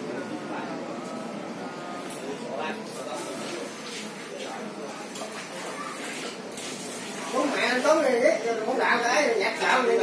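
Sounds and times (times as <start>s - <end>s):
indistinct background talk: 0.0s - 10.0s.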